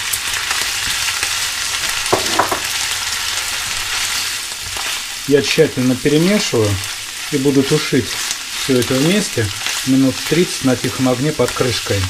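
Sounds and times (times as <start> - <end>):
food sizzling in frying pan: 0.0 - 12.0.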